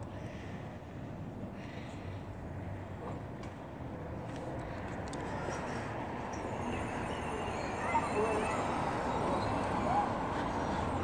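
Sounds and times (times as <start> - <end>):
city street noise: 0.0 - 11.0
faint distant voices: 4.2 - 11.0.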